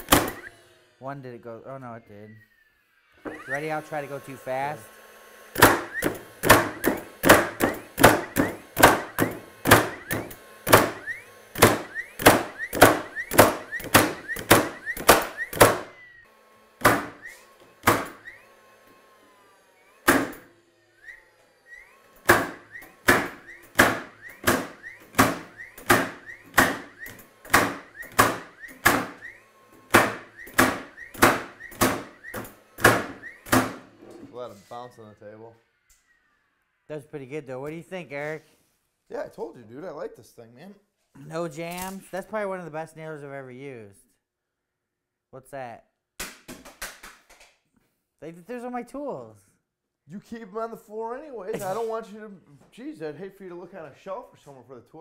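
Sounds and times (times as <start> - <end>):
nailer driving nails into wood: 0.0 - 0.5, 5.5 - 16.0, 16.8 - 18.4, 20.0 - 20.5, 22.2 - 33.9
short rising whine: 0.0 - 16.3, 17.0 - 33.5.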